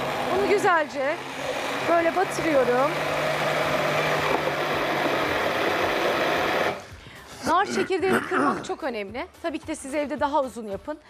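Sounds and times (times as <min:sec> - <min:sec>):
electric hand blender chopping seeds: 0:00.0 - 0:06.8.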